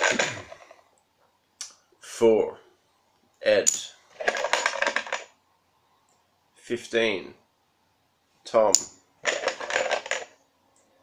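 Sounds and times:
plastic tokens rattling in box: 0.0s - 0.6s, 4.2s - 5.3s, 9.2s - 10.4s.

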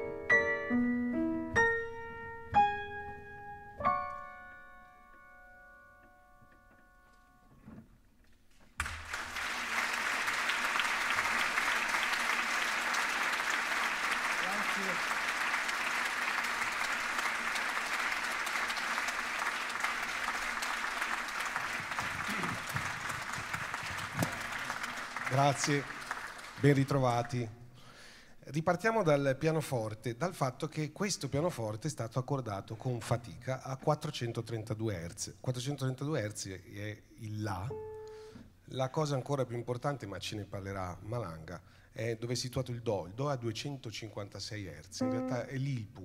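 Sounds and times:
grand piano playing: 0.0s - 7.4s, 37.6s - 38.2s, 45.0s - 46.0s
audience applause: 8.8s - 27.4s.

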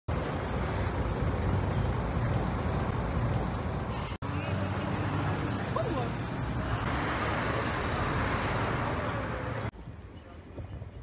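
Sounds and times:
city road traffic: 0.1s - 11.0s.

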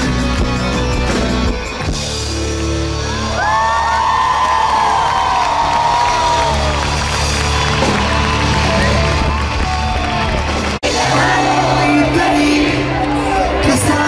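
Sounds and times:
live pop-rock band playing: 0.0s - 4.2s, 5.4s - 14.0s
crowd whooping and cheering: 2.6s - 14.0s.

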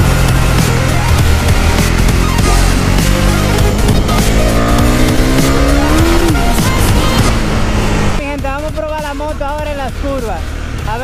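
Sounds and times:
motorcycle engine revving: 0.0s - 11.0s
music with singing: 0.0s - 11.0s.

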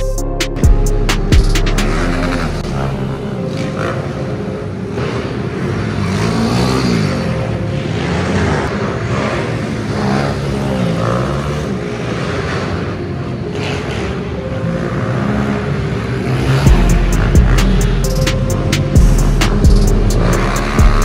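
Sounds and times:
pit bike engines revving: 1.7s - 21.0s.

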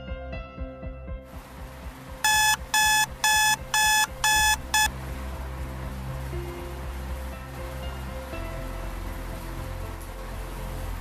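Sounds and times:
electronic alarm beeping: 2.3s - 4.9s.

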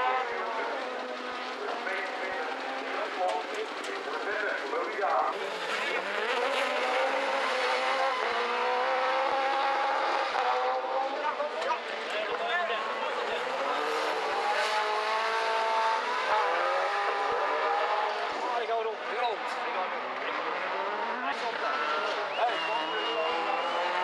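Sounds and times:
racing engines revving hard: 0.0s - 24.0s.

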